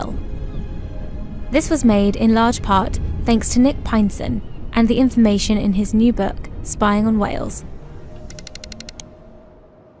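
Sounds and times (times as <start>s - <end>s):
background music: 0.0s - 10.0s
sharp click: 8.3s - 9.1s.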